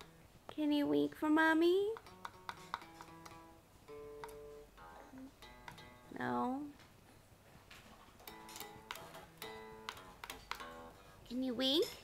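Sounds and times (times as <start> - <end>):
plucked guitar notes: 0.0 - 0.3, 1.9 - 6.7, 8.2 - 11.1.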